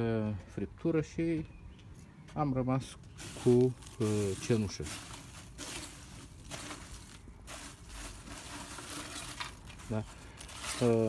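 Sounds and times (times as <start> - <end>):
hand stirring charcoal ash: 3.1 - 11.0
charcoal scraping metal tray: 3.2 - 11.0.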